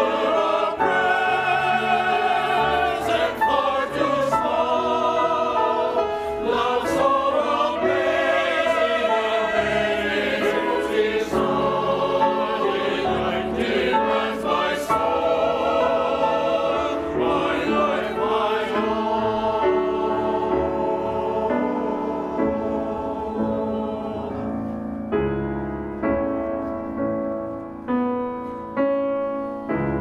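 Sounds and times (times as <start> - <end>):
mixed choir singing: 0.0 - 24.9.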